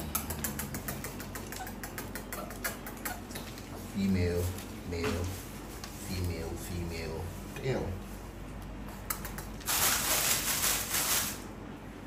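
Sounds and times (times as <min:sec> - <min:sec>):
rustling scraping noise: 0:09.6 - 0:11.5.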